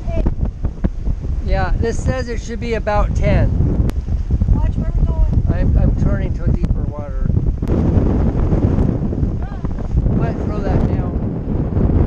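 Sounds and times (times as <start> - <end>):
wind buffeting microphone: 0.0 - 12.0
person talking: 9.4 - 11.2.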